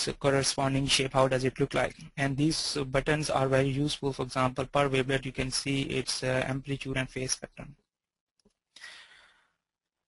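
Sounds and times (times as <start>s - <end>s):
faint breath into microphone: 8.8s - 9.6s.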